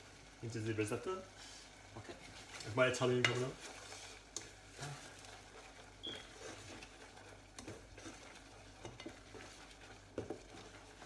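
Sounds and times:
spoon scraping in saucepan: 0:01.4 - 0:11.0.

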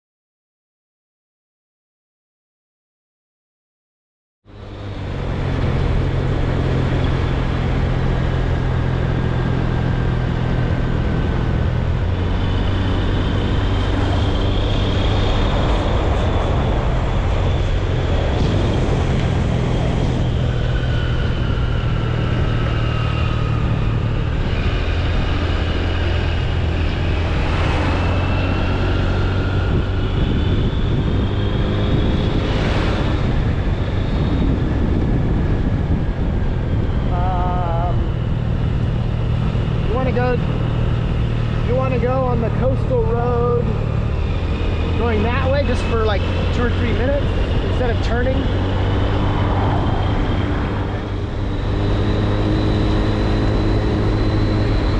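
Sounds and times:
road noise: 0:04.4 - 0:54.9
faint whines: 0:04.5 - 0:54.9
vehicle engine drone: 0:04.5 - 0:54.9.

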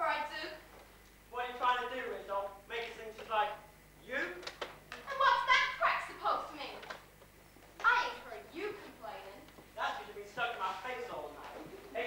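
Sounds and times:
actors speaking dialogue: 0:01.2 - 0:12.0.

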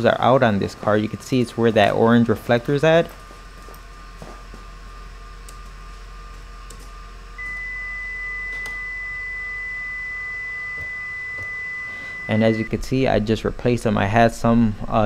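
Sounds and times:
faint steady hum: 0:00.0 - 0:15.0
high electronic beep: 0:07.4 - 0:12.7.

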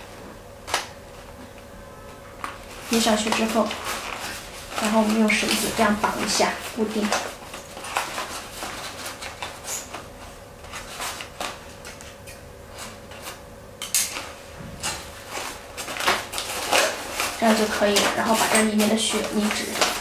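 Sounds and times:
paper crinkling and rustling: 0:02.4 - 0:13.4, 0:14.1 - 0:20.0.

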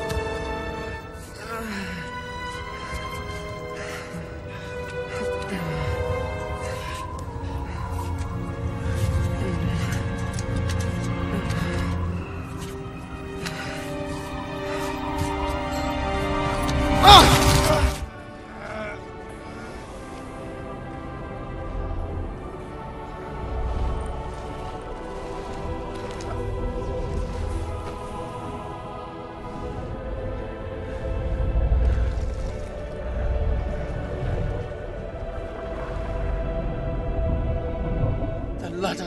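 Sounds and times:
quiet film score music: 0:00.0 - 0:39.0.

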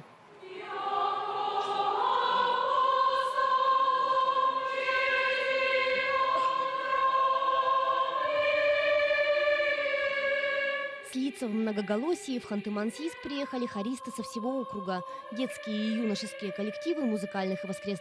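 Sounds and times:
choir singing held notes: 0:00.4 - 0:18.0.

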